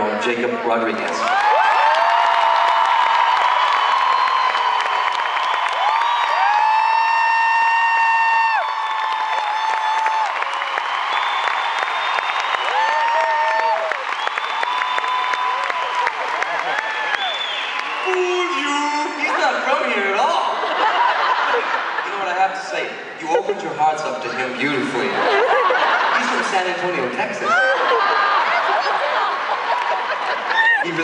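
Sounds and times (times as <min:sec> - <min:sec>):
crowd cheering and applauding: 0:00.9 - 0:22.1, 0:25.2 - 0:31.0
high screams and whoops: 0:01.2 - 0:19.0, 0:27.4 - 0:28.2, 0:30.5 - 0:30.9.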